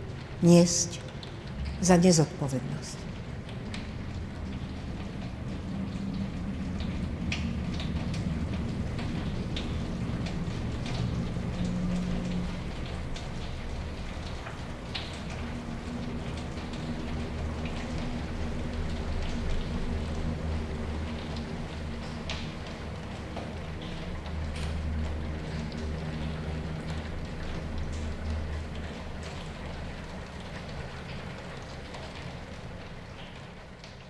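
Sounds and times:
steady rain-like noise: 0.0 - 34.0.

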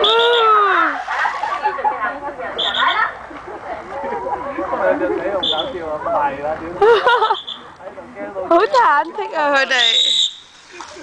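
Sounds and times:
people crying out: 0.0 - 1.0
people chattering: 0.0 - 11.0.

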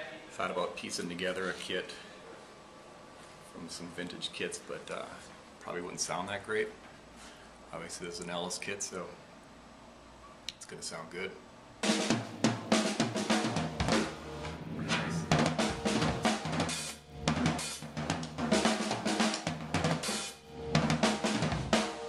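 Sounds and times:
bass drum strikes: 11.8 - 21.9
cymbal strikes: 11.8 - 22.0
snare drum strikes: 11.8 - 22.0.

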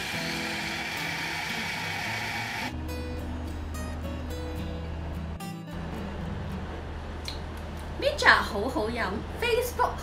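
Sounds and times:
blender motor running: 0.0 - 2.7
guitar music: 0.0 - 7.0.

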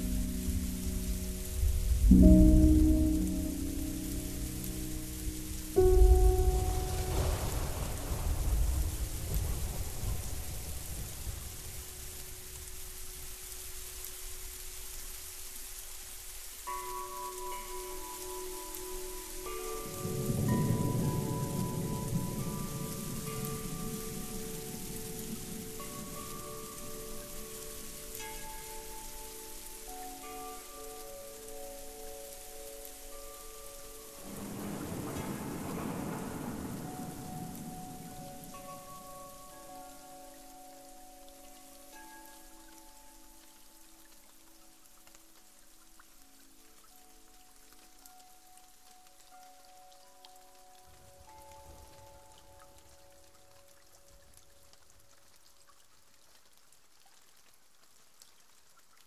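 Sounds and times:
slow ambient music: 0.0 - 58.3
rain hiss: 0.0 - 59.0
low rolling thunder: 5.8 - 12.1, 34.2 - 39.1.

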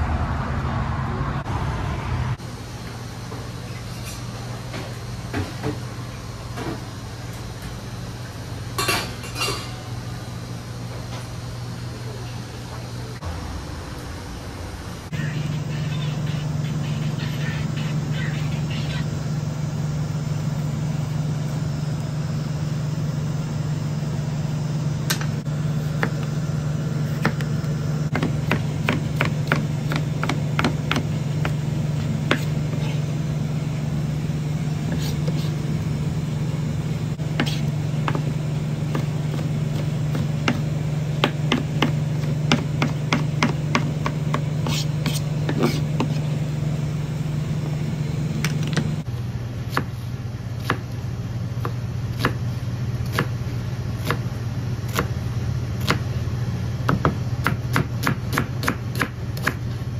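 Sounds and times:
low machine hum: 0.0 - 59.9.

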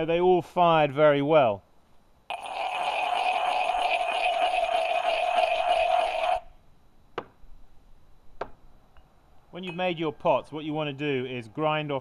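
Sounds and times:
stoneware grinding against pottery: 2.3 - 6.5.

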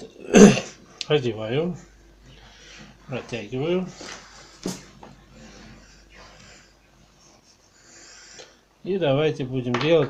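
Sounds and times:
faint rustling: 0.9 - 8.7.

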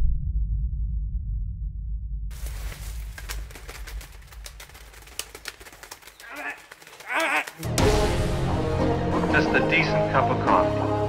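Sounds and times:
person's voice: 6.2 - 7.7.

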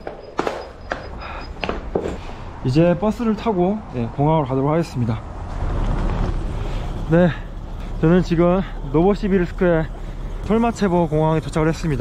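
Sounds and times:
low outdoor rumble: 2.5 - 12.0.

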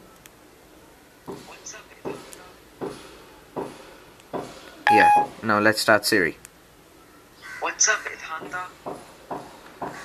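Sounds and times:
phone volume button clicks: 4.9 - 5.3
short electronic beep: 4.9 - 5.3.

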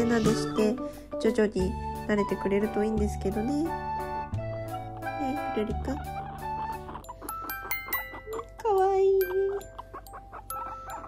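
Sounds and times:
plucked background music: 0.0 - 11.0.

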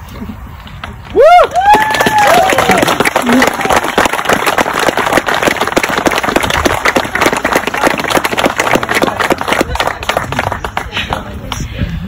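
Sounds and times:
crowd applauding: 1.2 - 11.6.

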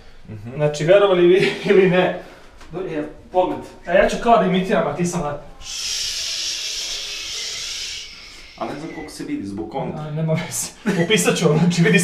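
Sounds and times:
steady high hiss: 4.9 - 9.9.

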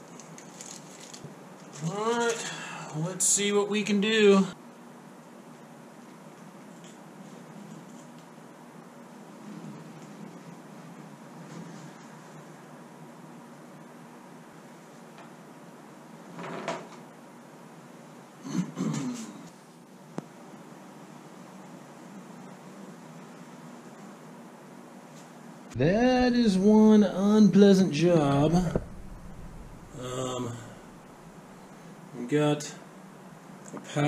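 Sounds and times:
workshop hum: 25.4 - 32.1
sharp click: 28.6 - 30.0.

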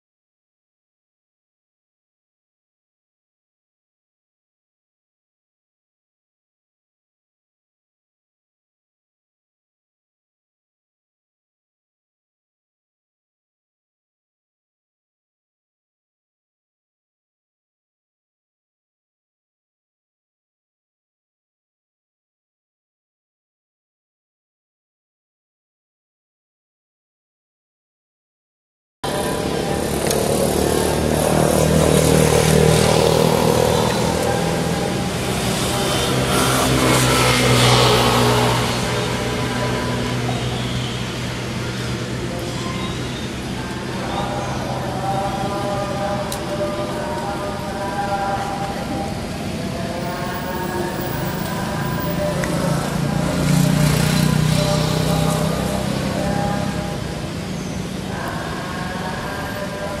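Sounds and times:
motor traffic passing: 29.0 - 60.0.

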